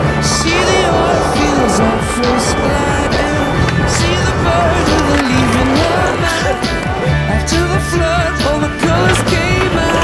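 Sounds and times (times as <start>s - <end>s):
skateboard wheels grinding on concrete: 0.0s - 10.0s
low rumble: 0.2s - 7.3s
song with singing and drums: 0.3s - 10.0s.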